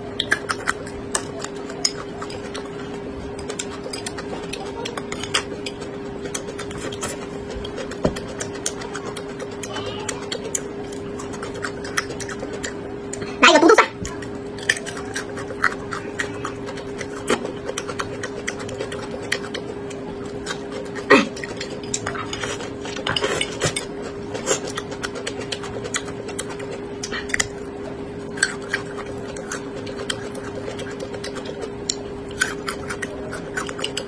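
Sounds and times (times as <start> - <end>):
chewing crunches and mouth clicks: 0.0 - 34.0
steady low hum: 0.0 - 34.0.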